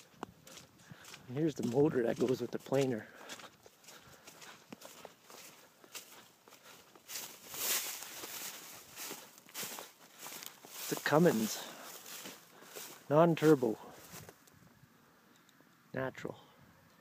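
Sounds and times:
footsteps through dry grass: 0:00.0 - 0:14.6.

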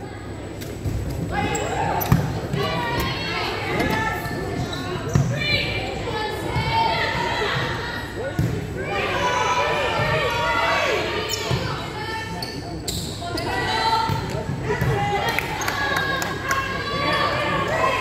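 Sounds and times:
players shouting: 0:01.3 - 0:12.4, 0:13.2 - 0:18.0.

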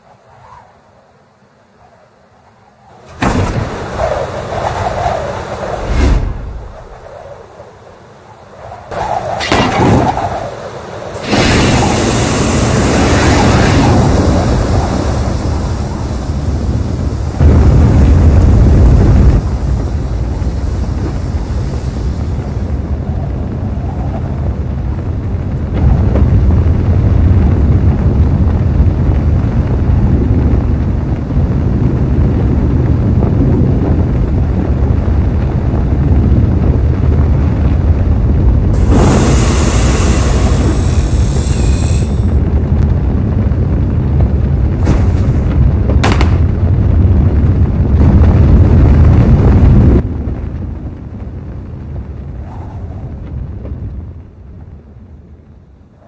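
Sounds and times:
rocket thrusters firing: 0:11.2 - 0:23.0, 0:38.7 - 0:42.4, 0:44.7 - 0:46.9.

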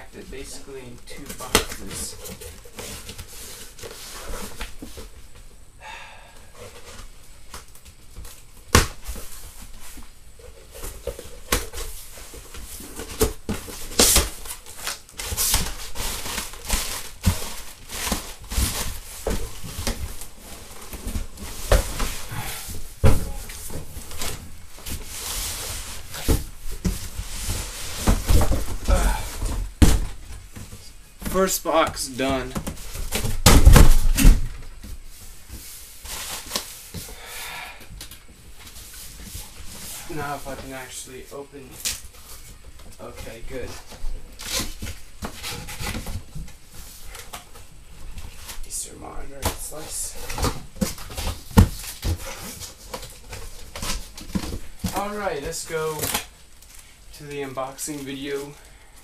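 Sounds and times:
cardboard scraping and rustling: 0:00.2 - 0:05.3, 0:08.2 - 0:37.1, 0:38.5 - 0:56.4.

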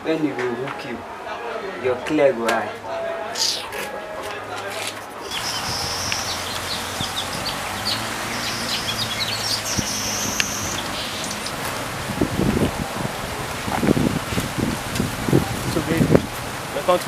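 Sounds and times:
birds chirping: 0:03.2 - 0:14.8
rustling in dry leaves: 0:03.4 - 0:17.0.

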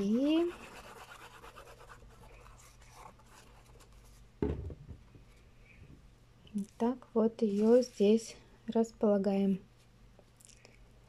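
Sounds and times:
glue tip scratching on paper: 0:00.0 - 0:04.0
thump: 0:04.4 - 0:05.0.

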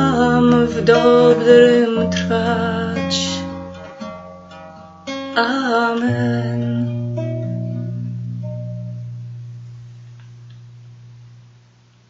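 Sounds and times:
low guitar chord ringing: 0:00.0 - 0:05.4, 0:06.0 - 0:11.9.

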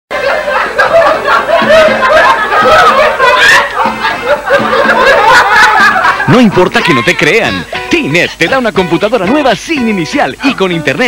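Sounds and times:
people laughing: 0:00.1 - 0:09.0.

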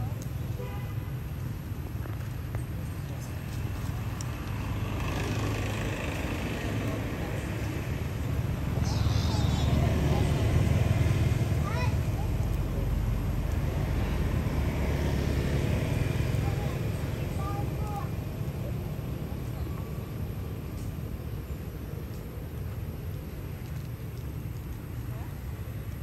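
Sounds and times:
low outdoor rumble: 0:00.0 - 0:26.0.

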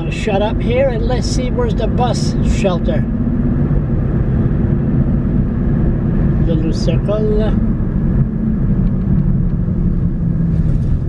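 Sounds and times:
car engine rumble from inside cabin: 0:00.0 - 0:11.0.

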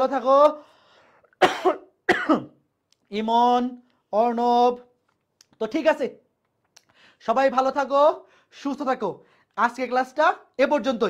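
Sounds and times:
person coughing: 0:01.3 - 0:02.6.

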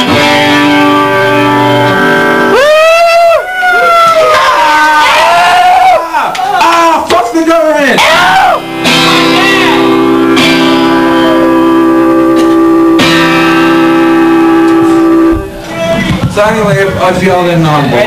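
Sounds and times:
guitar chord ringing: 0:00.0 - 0:02.5, 0:08.6 - 0:15.6.

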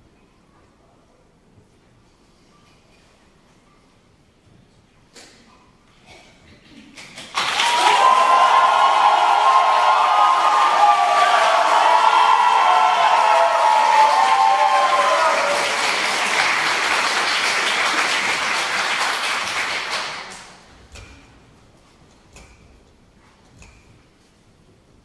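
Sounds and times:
audience applauding: 0:07.2 - 0:20.7
voices calling out and cheering: 0:07.4 - 0:17.0.

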